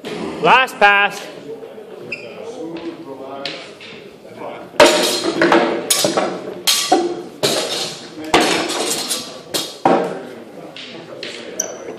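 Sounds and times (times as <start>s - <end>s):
swords clanking on shields: 4.8s - 9.8s.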